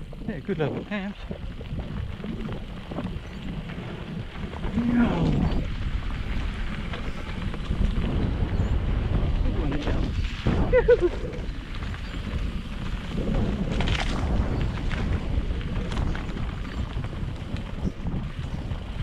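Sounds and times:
bike tyres rumbling on dirt: 0.0 - 19.0
wind buffeting microphone: 0.0 - 19.0.

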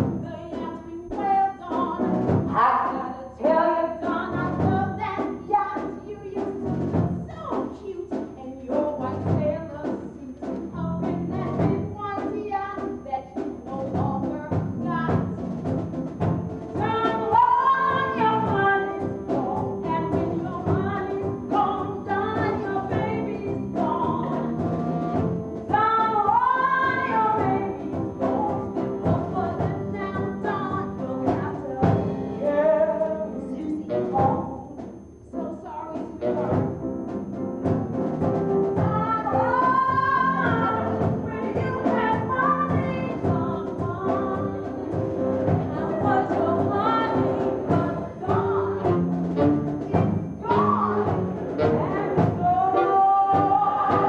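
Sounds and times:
woman singing: 0.0 - 6.6, 7.3 - 15.3, 16.8 - 24.6, 25.7 - 36.6, 38.8 - 49.1, 49.9 - 54.0
instrumental accompaniment: 0.0 - 54.0.

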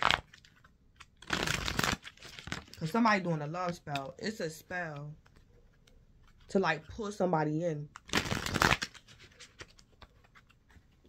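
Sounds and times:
cards being shuffled: 0.0 - 6.6, 7.9 - 11.0.

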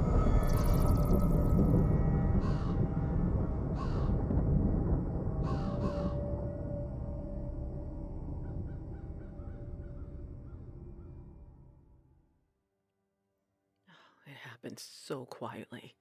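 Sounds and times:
deep rumbling horror music drone: 0.0 - 12.4
crow cawing: 3.8 - 4.1.

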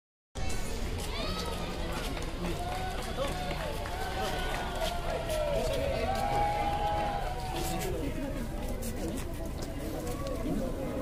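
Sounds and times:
people talking and calling out: 0.4 - 11.0.

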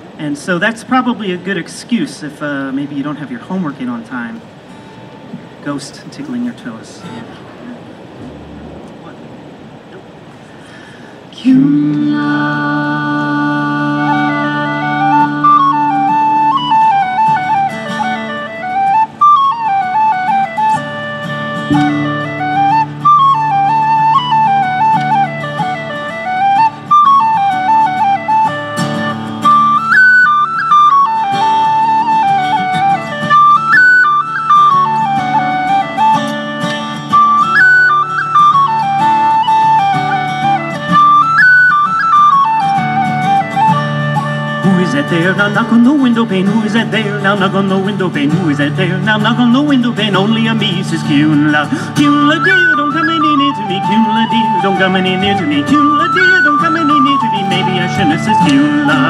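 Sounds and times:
strummed acoustic guitar: 2.7 - 59.0
steady low accompaniment: 7.9 - 10.3
tin whistle playing a folk tune: 11.5 - 59.0.

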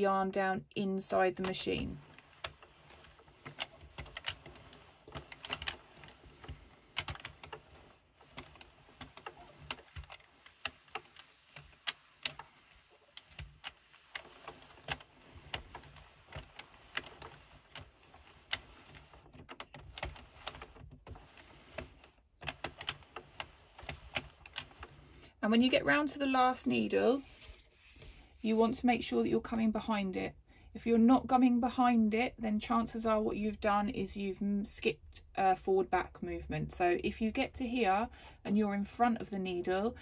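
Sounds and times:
knitting machine needles clicking: 1.0 - 25.9.

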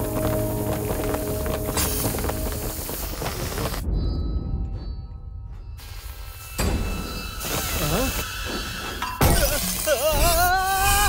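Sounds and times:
film music: 0.0 - 10.6
air hissing from leak: 5.8 - 11.0.

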